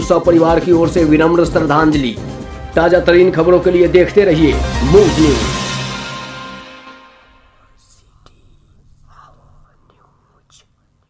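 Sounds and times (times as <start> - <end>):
outro music: 0.0 - 8.1
faint whispering voice: 7.5 - 11.0.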